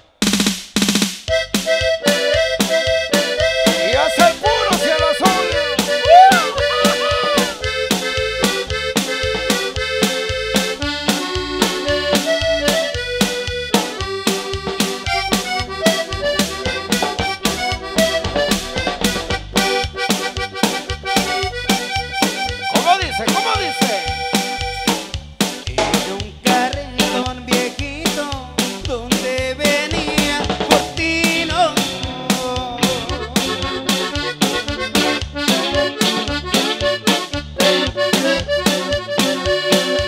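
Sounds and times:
bass guitar: 0:00.0 - 0:40.0
steady drum beat: 0:00.0 - 0:40.0
accordion melody: 0:01.3 - 0:40.0.

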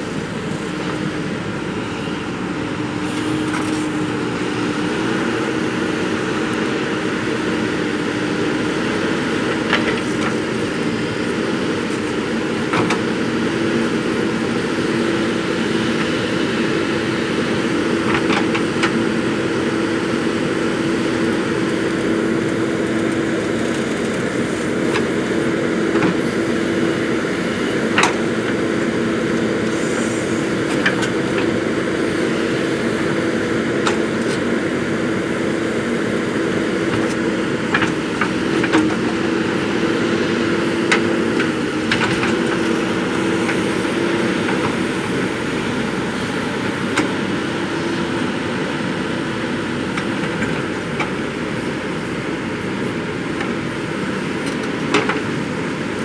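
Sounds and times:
diesel engine running under load: 0:00.0 - 0:56.0.

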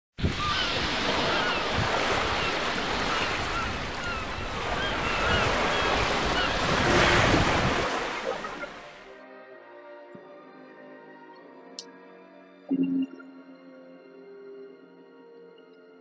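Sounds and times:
waves washing on shore: 0:00.2 - 0:09.0.

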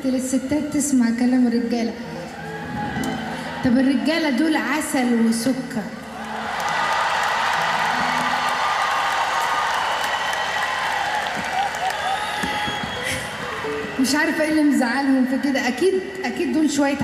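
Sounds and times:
whoops: 0:02.3 - 0:03.8, 0:06.2 - 0:14.6
audience cheering and applauding: 0:06.0 - 0:15.8.

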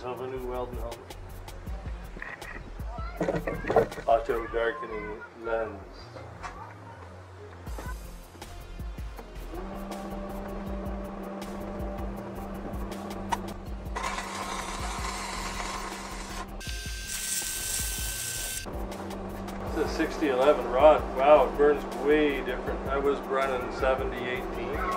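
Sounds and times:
welding arc crackling: 0:13.8 - 0:18.7
steady background tone: 0:18.2 - 0:24.9.

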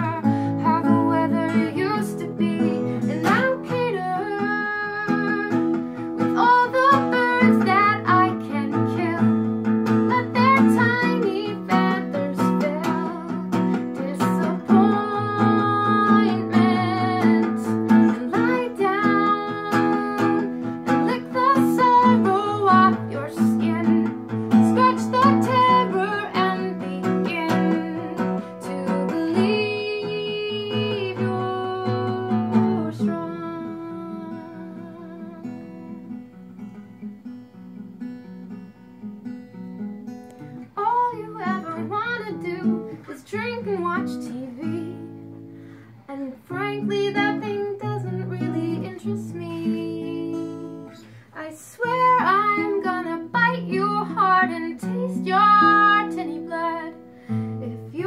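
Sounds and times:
woman singing: 0:00.0 - 0:36.2, 0:40.6 - 0:58.0
acoustic jazz guitar: 0:00.0 - 0:58.0.

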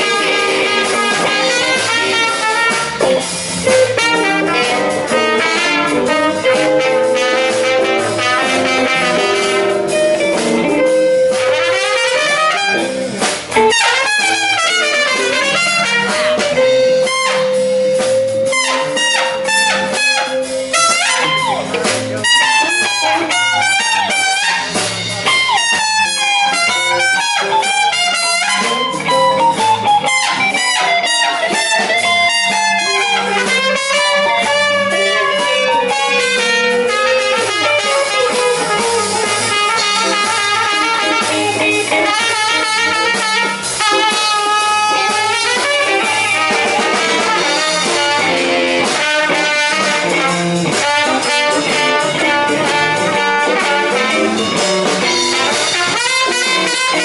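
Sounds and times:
drums: 0:00.0 - 0:57.0
electric guitar: 0:00.0 - 0:57.0
trumpet solo: 0:00.0 - 0:57.0.

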